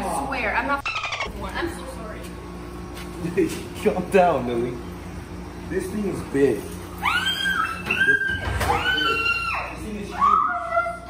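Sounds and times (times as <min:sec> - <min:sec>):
woman squealing in fright: 0:07.0 - 0:11.0.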